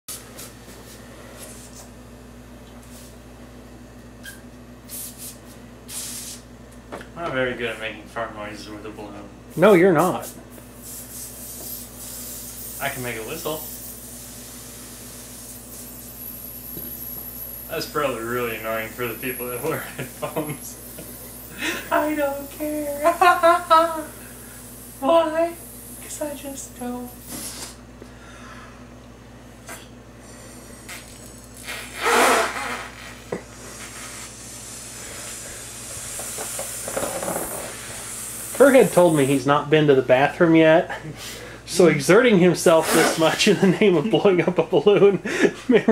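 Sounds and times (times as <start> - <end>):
air hissing out of balloon: 4.2 - 6.5, 9.5 - 27.8, 30.2 - 39.5, 42.7 - 43.4.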